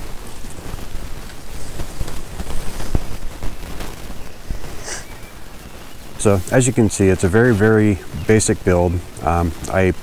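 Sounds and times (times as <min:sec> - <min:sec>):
microphone handling noise: 0:00.0 - 0:08.4.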